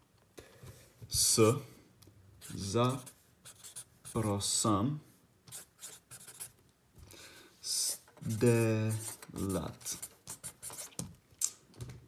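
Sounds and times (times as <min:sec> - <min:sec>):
pen writing on paper: 0:02.4 - 0:04.2, 0:05.5 - 0:06.5, 0:08.2 - 0:11.0.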